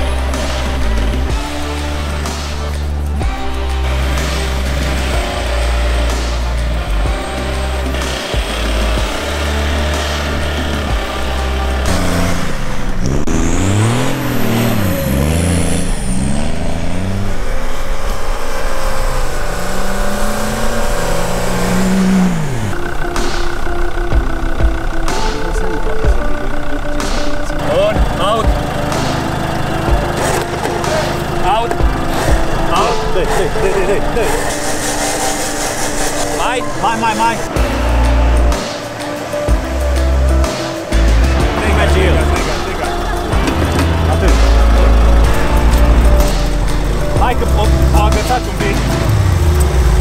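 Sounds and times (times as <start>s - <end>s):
background music with bass: 0.0s - 50.0s
engine revving under load: 0.0s - 50.0s.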